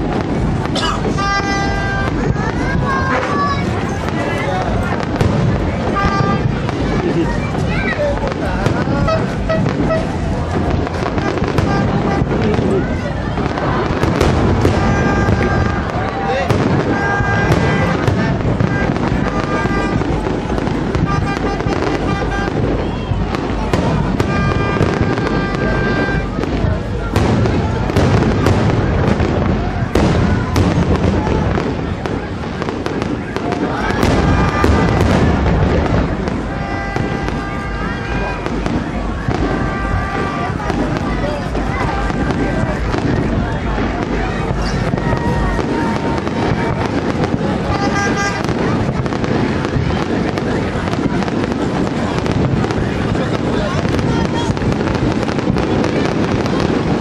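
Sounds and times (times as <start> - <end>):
continuous rumble: 0.0 - 57.0
crowd voices: 0.0 - 57.0
fireworks bursting: 0.0 - 57.0.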